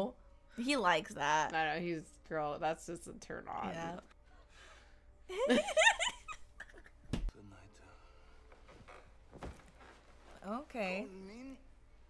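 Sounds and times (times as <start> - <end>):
women laughing: 5.3 - 6.9.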